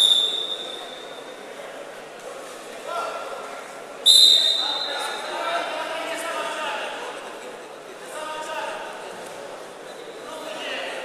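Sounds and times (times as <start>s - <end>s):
referee's whistle blast: 0.0s - 1.2s, 4.1s - 5.2s.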